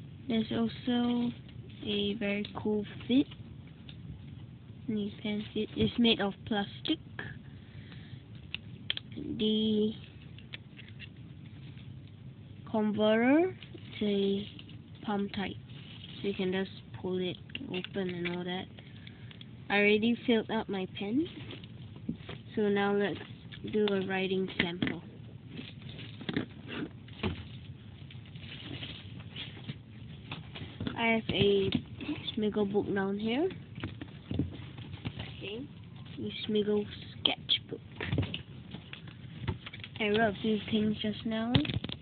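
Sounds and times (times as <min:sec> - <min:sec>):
low steady hum: 0:00.0 - 0:42.0
faint handling rustle: 0:13.6 - 0:16.7, 0:21.1 - 0:32.5.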